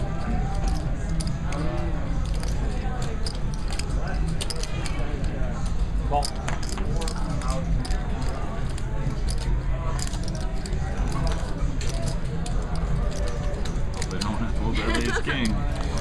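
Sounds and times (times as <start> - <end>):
poker chips clicking: 0.0 - 5.3, 6.1 - 14.6, 15.4 - 16.0.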